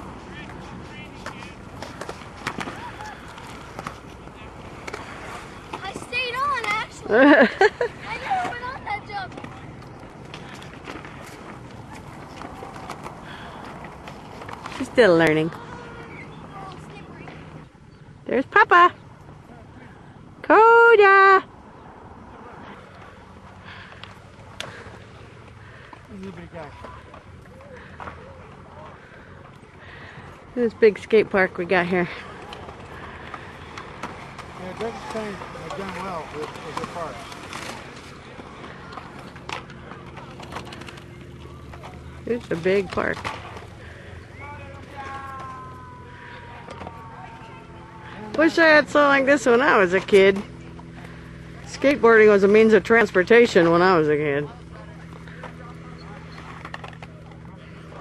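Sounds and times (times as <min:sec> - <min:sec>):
skateboard clacks: 0:00.0 - 0:17.6, 0:32.3 - 0:51.2, 0:54.9 - 0:58.0
outdoor background noise: 0:00.0 - 0:58.0
skateboard wheels rolling on concrete: 0:00.0 - 0:58.0
faint distant voices: 0:21.6 - 0:58.0.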